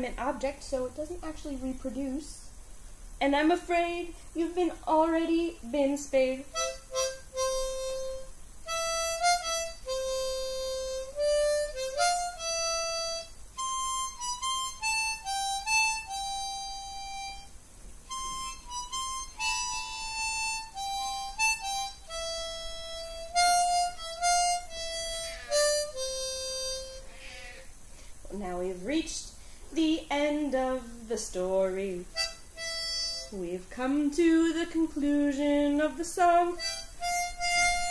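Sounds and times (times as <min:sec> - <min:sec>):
harmonica solo: 0:06.5 - 0:27.7, 0:32.1 - 0:33.5, 0:36.2 - 0:37.9.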